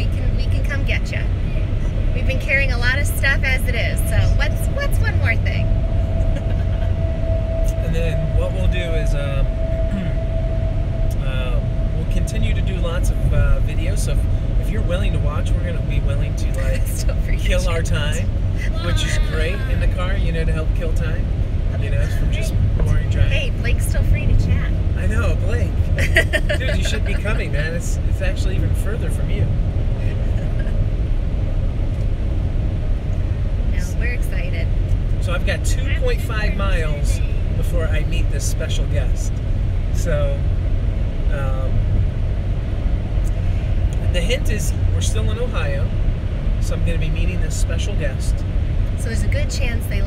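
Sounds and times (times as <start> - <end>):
voices: 0.0 - 10.3, 11.1 - 30.8, 33.7 - 39.4, 40.0 - 40.5, 41.3 - 41.8, 44.0 - 45.9, 46.6 - 48.4, 49.0 - 50.0
car road and engine rumble: 0.0 - 50.0.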